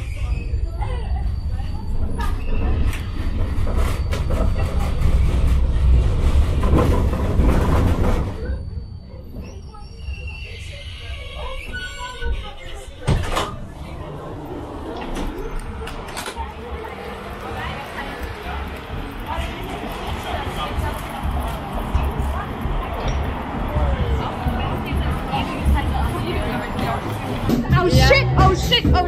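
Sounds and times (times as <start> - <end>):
tram rumble: 0.0 - 29.0.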